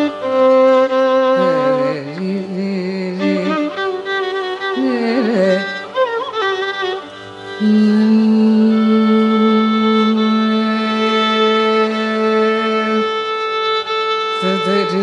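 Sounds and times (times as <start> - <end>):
tanpura drone: 0.0 - 15.0
violin playing ornamented phrase: 0.0 - 15.0.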